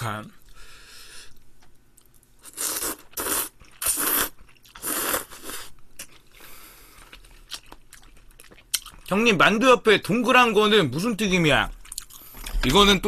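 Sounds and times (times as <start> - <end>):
chewing: 1.6 - 9.1, 11.8 - 12.6
slurping noodles: 2.4 - 5.7.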